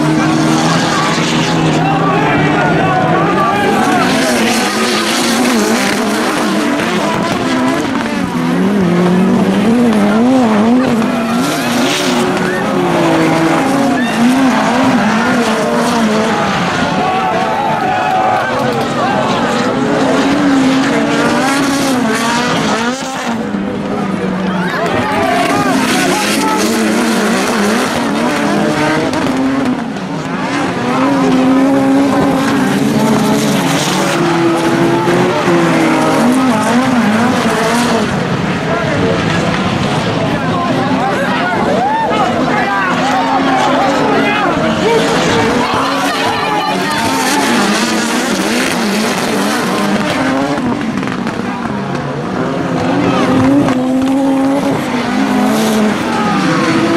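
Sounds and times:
racing car engines revving: 0.0s - 56.9s.

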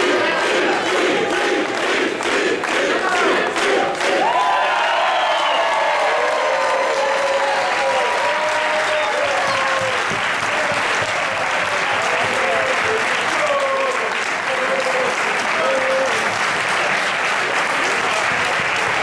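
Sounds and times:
audience applauding: 0.0s - 19.0s.

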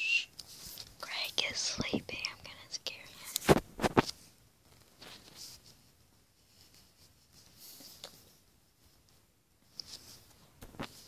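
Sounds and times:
child whispering: 1.0s - 3.4s.

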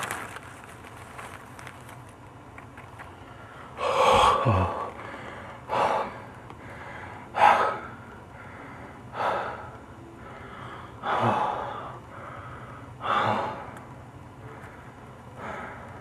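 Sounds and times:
faint low hum: 0.0s - 16.0s
heavy labored breathing: 3.2s - 16.0s.

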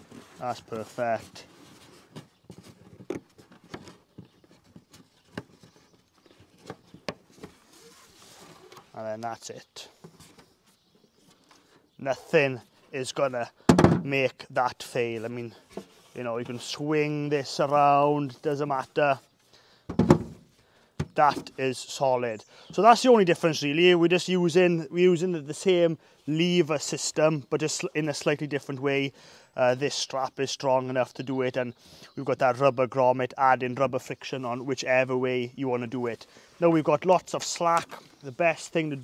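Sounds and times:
strap sliding rustle: 0.0s - 9.0s
beehive thumping on wooden table: 19.9s - 20.3s.

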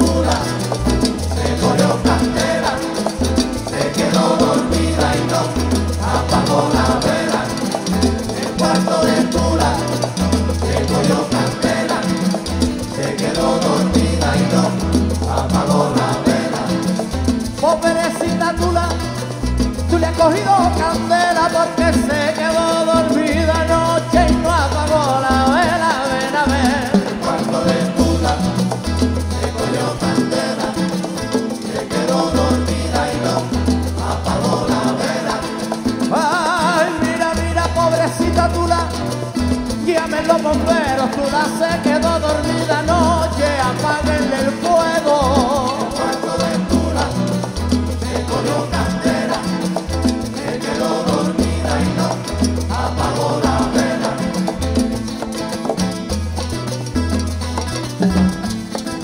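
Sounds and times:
man singing into microphone: 0.0s - 12.2s, 12.9s - 16.9s, 17.6s - 19.2s, 19.9s - 28.6s, 31.8s - 47.4s
latin band playing: 0.0s - 59.0s.

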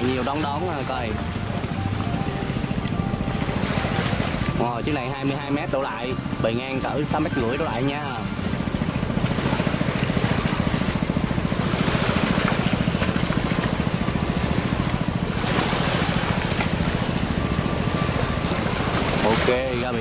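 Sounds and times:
boat diesel engine thudding: 0.0s - 20.0s
water washing along hull: 0.0s - 20.0s.

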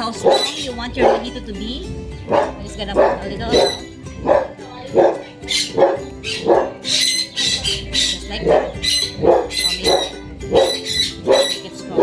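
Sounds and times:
dog barking: 0.0s - 1.4s, 2.3s - 12.0s
background music: 0.0s - 12.0s.

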